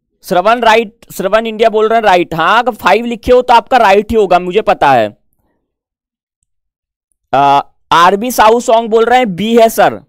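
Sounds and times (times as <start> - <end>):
man speaking: 0.2 - 5.2, 7.3 - 10.0.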